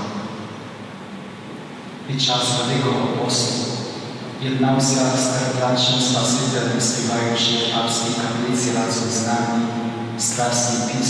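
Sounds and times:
low hiss of room noise: 0.0s - 11.0s
man's voice: 2.1s - 3.8s, 4.4s - 11.0s.

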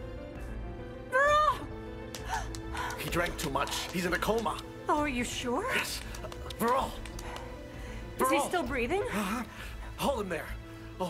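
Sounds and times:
dramatic background music: 0.0s - 11.0s
woman crying out: 1.1s - 2.5s.

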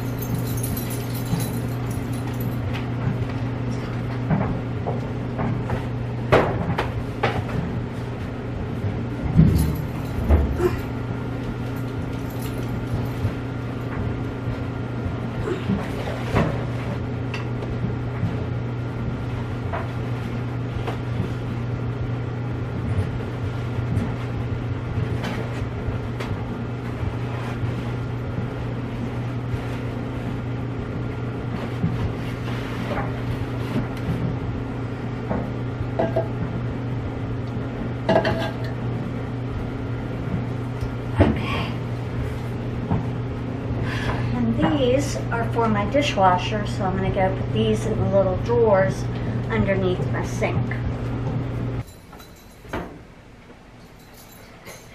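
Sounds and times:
low hum: 0.0s - 54.9s.

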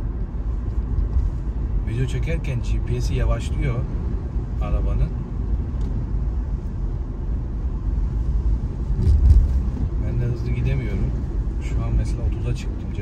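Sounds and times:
car engine and road rumble: 0.0s - 13.0s.

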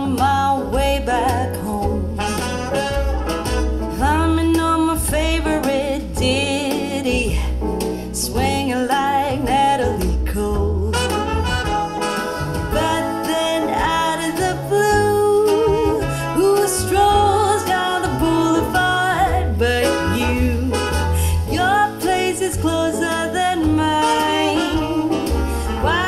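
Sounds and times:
song with vocals and guitar: 0.0s - 26.0s
steady bass line: 0.0s - 26.0s.

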